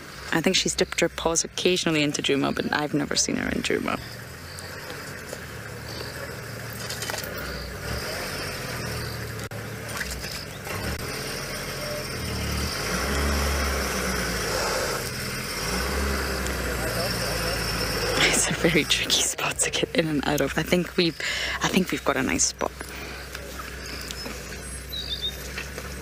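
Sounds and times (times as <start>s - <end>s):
vehicle engine running: 0.0s - 26.0s.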